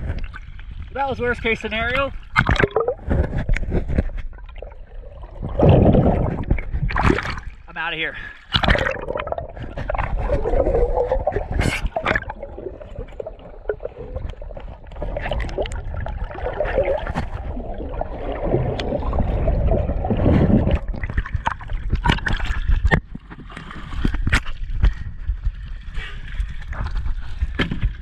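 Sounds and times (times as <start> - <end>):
sharp water splashes: 1.8 - 3.1, 4.4 - 7.7, 8.4 - 23.0
muffled underwater gurgling: 2.3 - 22.9.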